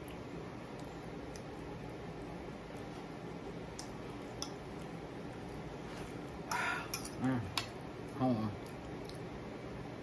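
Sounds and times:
person chewing food: 0:00.0 - 0:07.2, 0:08.0 - 0:09.4.

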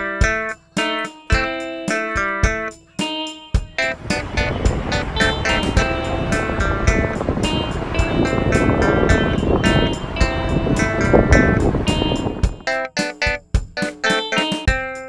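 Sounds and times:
instrumental music with steady beat: 0:00.0 - 0:15.0.

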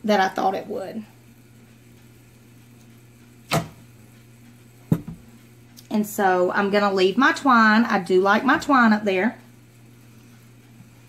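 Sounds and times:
wooden board knocking on table: 0:04.9 - 0:05.2.

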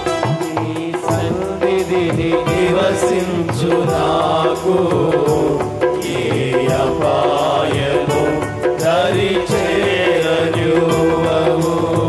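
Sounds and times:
drum hits: 0:00.0 - 0:12.0.

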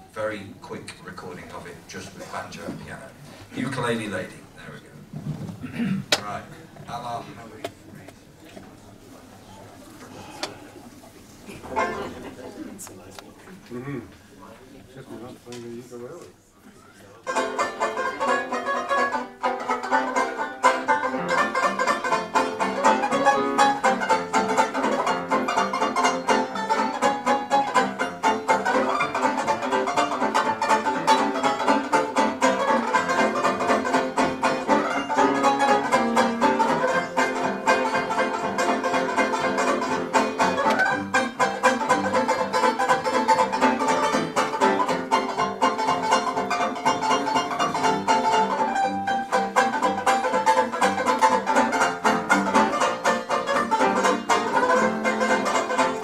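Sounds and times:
banjo plucked rapidly: 0:11.6 - 0:12.4, 0:17.2 - 0:56.0.

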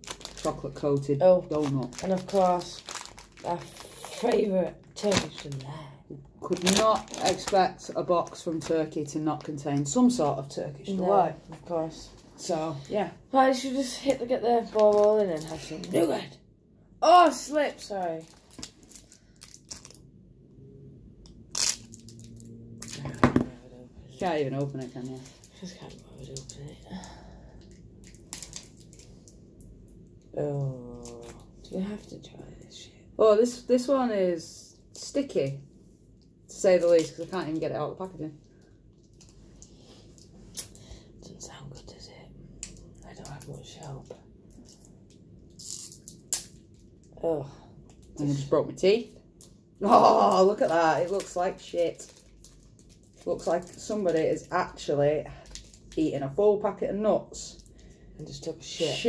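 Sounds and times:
plastic wrapper crinkling: 0:00.0 - 0:05.8, 0:06.4 - 0:10.2, 0:12.7 - 0:16.2, 0:17.5 - 0:20.1, 0:21.3 - 0:23.0, 0:27.6 - 0:29.4, 0:49.9 - 0:56.1.

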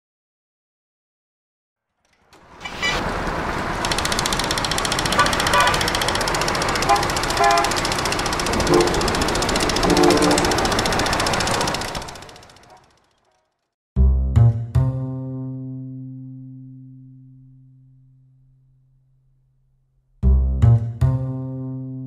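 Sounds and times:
street traffic noise: 0:02.1 - 0:13.6
short car horn toots: 0:06.8 - 0:07.8.

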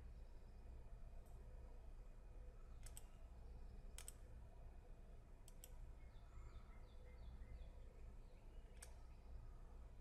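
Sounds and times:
computer mouse clicks: 0:02.8 - 0:03.2, 0:03.9 - 0:04.2, 0:05.4 - 0:05.8, 0:08.7 - 0:09.0.

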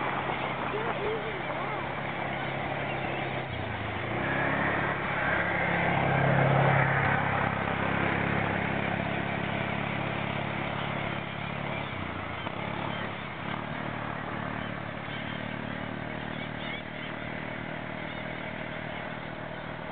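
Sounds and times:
engine humming: 0:00.0 - 0:19.9.

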